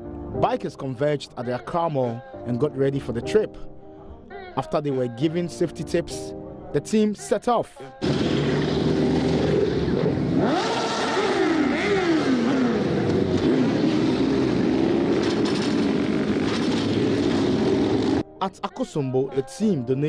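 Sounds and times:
motorcycle engines revving: 8.0 - 18.2
motorcycle passing by: 8.0 - 18.2.

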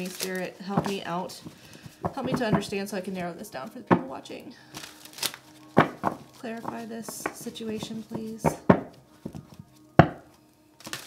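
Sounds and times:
cards rustling: 0.0 - 2.8, 3.9 - 11.0
card deck knock: 5.8 - 6.2, 10.0 - 10.3.

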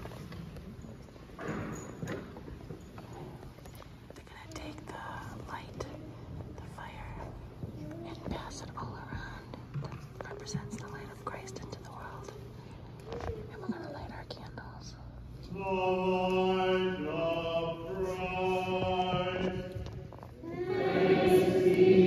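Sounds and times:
faint clicks and rustles: 0.0 - 15.0
congregation whispering and murmuring: 0.1 - 22.0.

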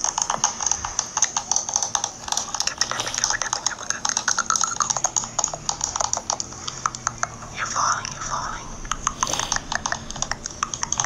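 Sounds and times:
rapid irregular clicking: 0.0 - 11.0.

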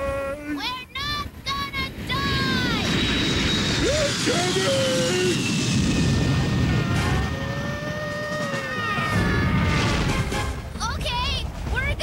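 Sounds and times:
jet airliner flying past: 1.7 - 10.7
cartoon characters screaming: 6.5 - 10.1.

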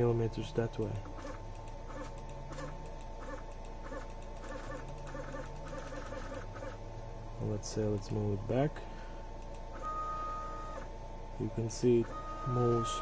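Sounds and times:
stepper motors pulsing buzz: 0.0 - 8.7, 9.3 - 13.0
steady high whine: 0.0 - 13.0.

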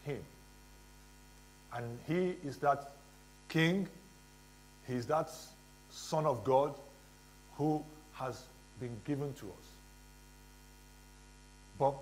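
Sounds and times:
man speaking: 0.0 - 0.4, 1.7 - 4.0, 4.9 - 9.8, 11.8 - 12.0
electrical mains hum: 0.0 - 12.0.

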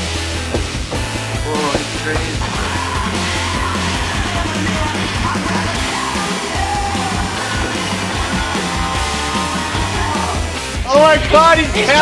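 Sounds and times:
loud aggressive rock music: 0.0 - 12.0.

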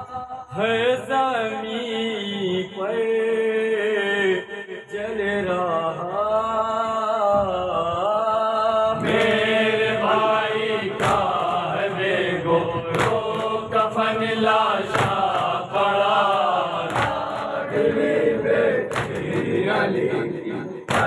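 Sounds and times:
men chanting in unison: 0.5 - 21.0
hands beating on chest: 14.9 - 15.5, 16.9 - 17.5, 18.9 - 19.4.

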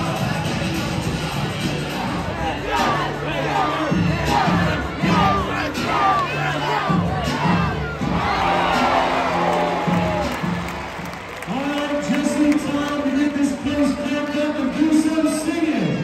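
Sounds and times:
crowd cheering and shouting: 0.0 - 16.0.

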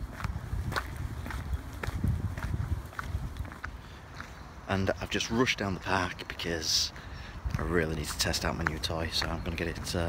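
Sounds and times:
low microphone rumble: 0.0 - 3.6
footsteps on gravel: 0.0 - 6.2, 6.8 - 10.0.

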